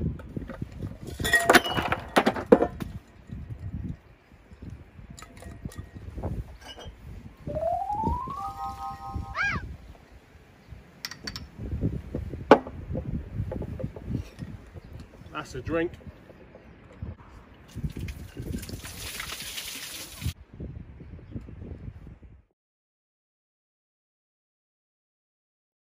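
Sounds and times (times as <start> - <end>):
rising whistle-like tone: 7.5 - 9.6.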